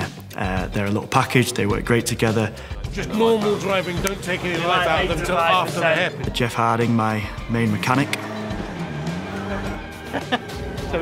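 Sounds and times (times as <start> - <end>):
background music: 0.0 - 11.0
race car engine: 3.0 - 11.0.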